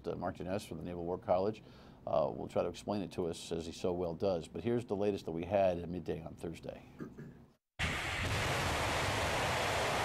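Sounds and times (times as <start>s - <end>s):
rocket engine roaring: 7.8s - 10.0s.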